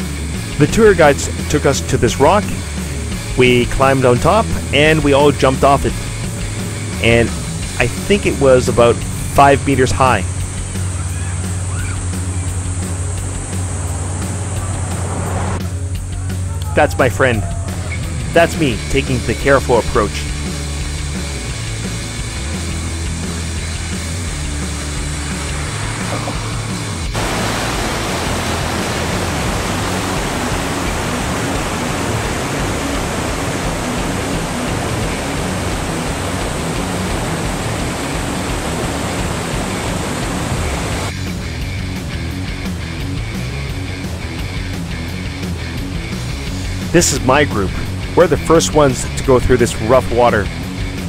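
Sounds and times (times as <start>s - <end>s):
background music: 0.0s - 51.0s
whitewater rapids rushing: 24.6s - 41.1s.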